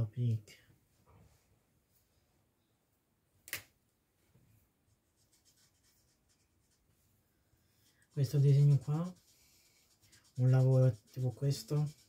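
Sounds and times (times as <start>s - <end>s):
marker scratching on wood: 4.9s - 6.9s, 7.8s - 12.0s.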